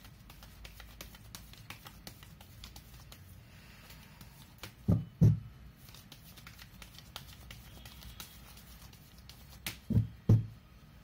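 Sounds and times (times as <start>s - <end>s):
cards being shuffled: 0.0s - 4.9s, 5.8s - 9.9s.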